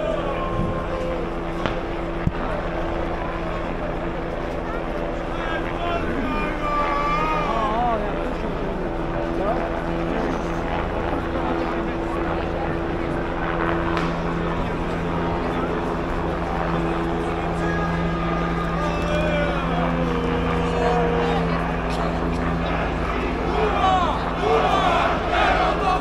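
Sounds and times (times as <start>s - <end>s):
crowd shouting: 0.0s - 4.0s, 5.0s - 8.7s, 14.8s - 26.0s
steady engine drone: 0.0s - 26.0s.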